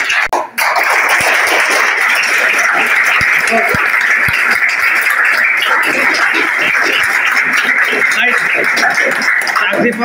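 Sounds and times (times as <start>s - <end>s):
people applauding: 0.0s - 10.0s.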